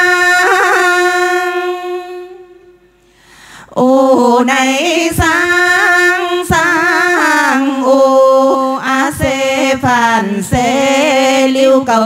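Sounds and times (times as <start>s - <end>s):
women singing in unison: 0.0s - 2.6s, 3.7s - 12.0s.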